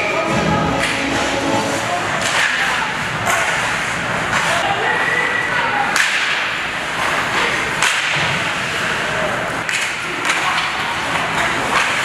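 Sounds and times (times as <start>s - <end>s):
skates scraping ice: 0.8s - 12.0s
hockey sticks cracking on puck: 1.7s - 4.7s, 5.9s - 12.0s.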